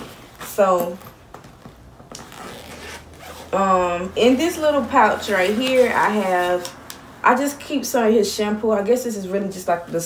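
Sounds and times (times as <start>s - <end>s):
soft fabric rustling: 0.0s - 6.8s.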